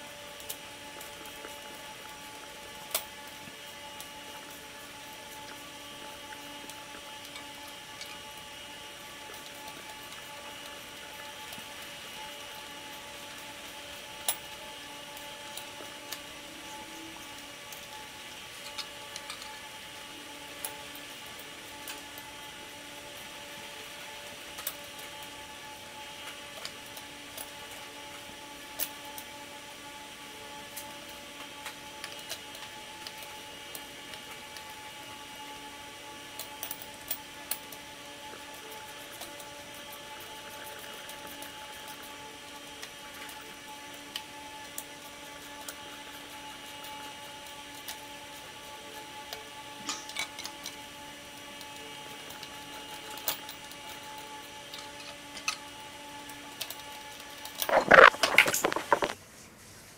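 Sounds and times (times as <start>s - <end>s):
steady mechanical hum: 0.0s - 59.9s.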